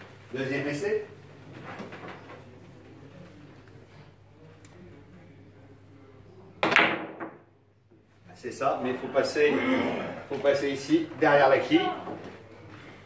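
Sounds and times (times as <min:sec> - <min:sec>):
billiard cue striking ball: 0:06.6 - 0:07.5.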